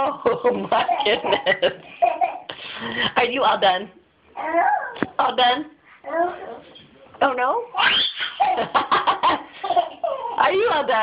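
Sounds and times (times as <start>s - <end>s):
toddler laughing: 0.0s - 2.5s, 7.8s - 10.4s.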